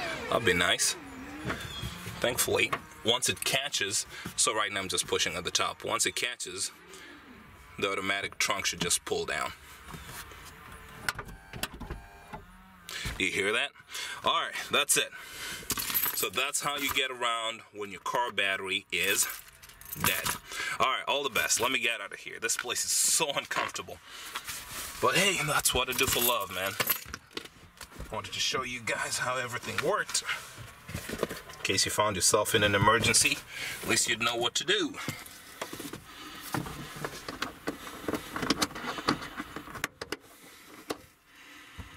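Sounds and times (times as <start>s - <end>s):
tailgate motor whine: 0.0s - 3.1s, 9.8s - 13.0s
rustling: 24.2s - 28.1s.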